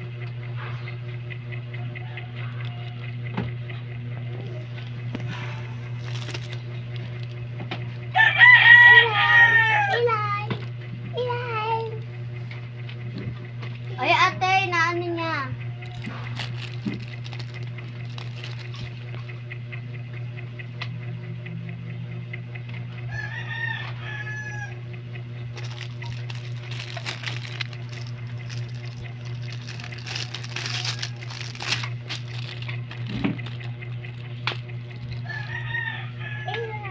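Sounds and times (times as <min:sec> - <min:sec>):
steady low hum: 0:00.0 - 0:36.9
rooster crowing: 0:01.8 - 0:03.2, 0:08.1 - 0:10.2, 0:23.1 - 0:24.8, 0:29.8 - 0:31.8, 0:35.1 - 0:36.9
plastic shrink-wrap crinkling: 0:02.2 - 0:03.2, 0:04.4 - 0:08.9, 0:15.8 - 0:19.3, 0:25.5 - 0:35.7.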